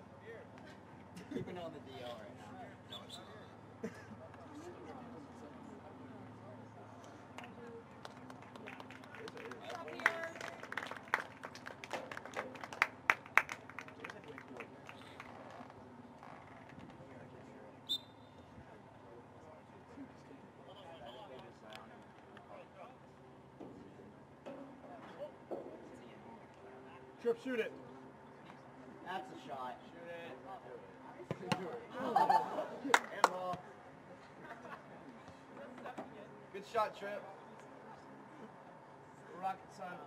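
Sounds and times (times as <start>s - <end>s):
handclaps: 7.4s - 15.3s, 32.9s - 33.4s.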